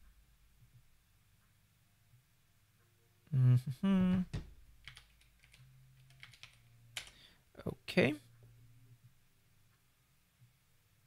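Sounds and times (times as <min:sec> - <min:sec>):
keyboard keystrokes: 0:04.8 - 0:07.2.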